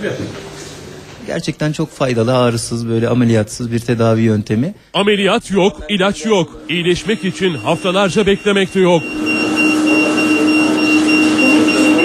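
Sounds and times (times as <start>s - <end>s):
machine humming: 5.9s - 12.0s
thin high whine: 6.2s - 12.0s.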